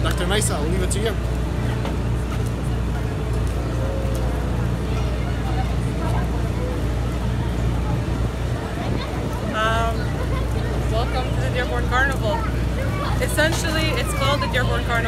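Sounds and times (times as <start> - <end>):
faint voices: 0.0 - 15.0
low engine drone: 0.0 - 15.0.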